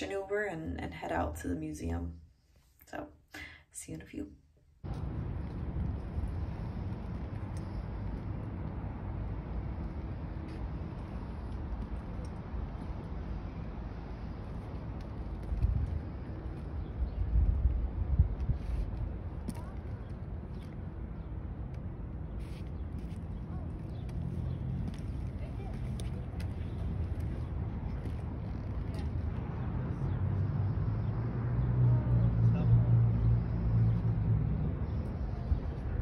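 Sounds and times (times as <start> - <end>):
wind buffeting microphone: 4.8 - 30.4.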